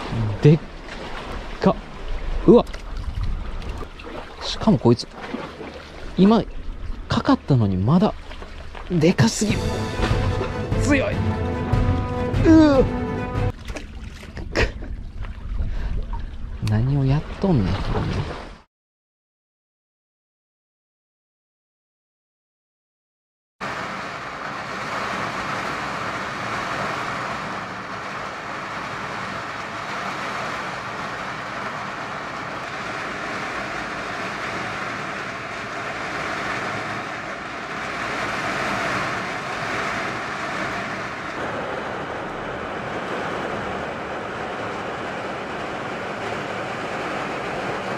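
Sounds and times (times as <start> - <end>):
rain hissing: 0.0 - 2.6, 8.7 - 13.5, 23.6 - 47.9
wind buffeting: 0.0 - 11.7, 24.5 - 47.9.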